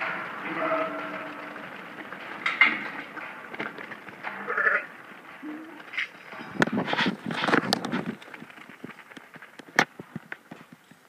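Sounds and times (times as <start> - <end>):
hooves knocking on dirt: 0.0 - 11.0
sheep bleating: 4.4 - 5.8.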